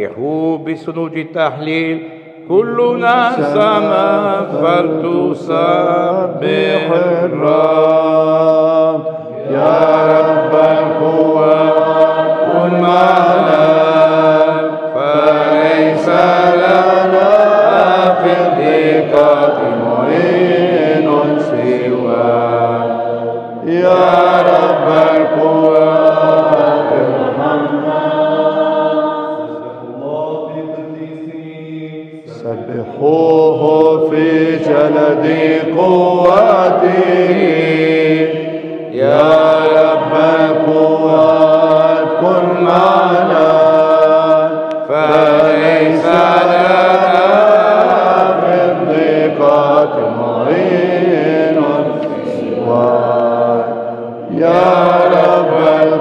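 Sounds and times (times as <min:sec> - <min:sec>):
men chanting liturgical chant: 0:00.0 - 0:56.0.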